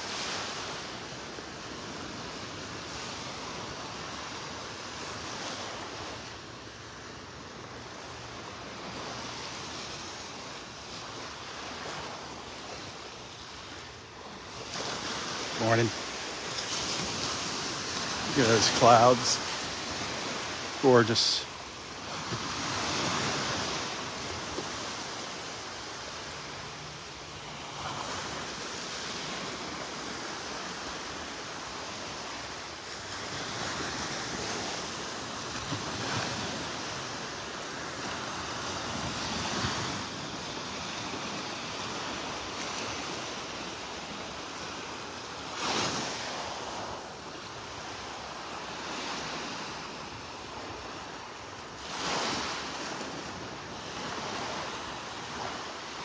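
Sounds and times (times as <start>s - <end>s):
surf washing onto beach: 0.0s - 56.0s.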